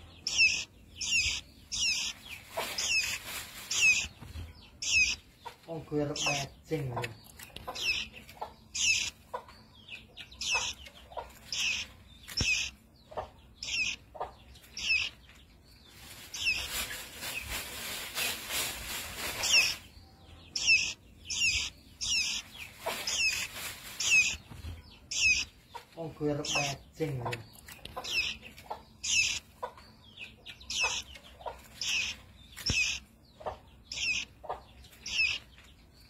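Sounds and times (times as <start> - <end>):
noise: 0.0 - 9.2, 10.3 - 12.8, 13.6 - 29.5
songbird chirping: 0.0 - 36.0.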